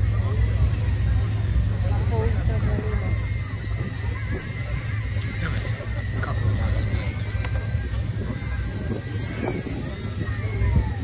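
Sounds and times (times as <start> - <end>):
faint voices: 0.0 - 11.0
low crowd rumble: 0.0 - 11.0
thin high whine: 0.0 - 11.0.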